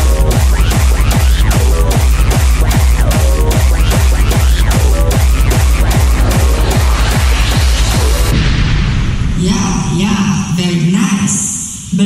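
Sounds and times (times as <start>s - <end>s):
distorted speedcore music: 0.0s - 9.2s.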